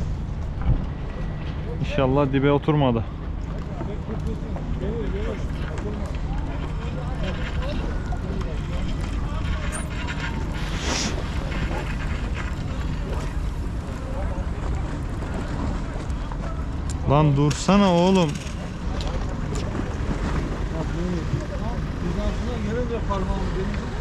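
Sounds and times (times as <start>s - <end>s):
faint voices: 2.8s - 24.0s.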